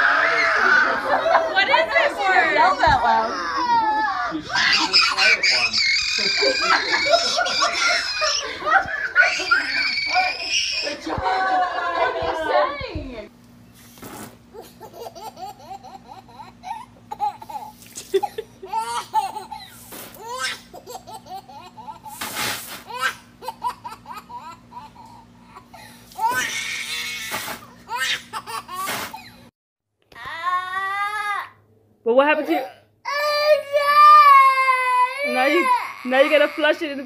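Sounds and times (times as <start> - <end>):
girl shrieking excitedly: 0.0 - 1.7, 2.5 - 11.7, 33.2 - 37.0.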